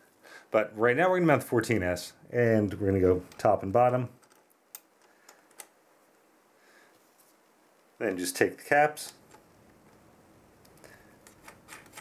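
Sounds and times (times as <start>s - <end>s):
faint metal clicks: 4.1s - 5.8s.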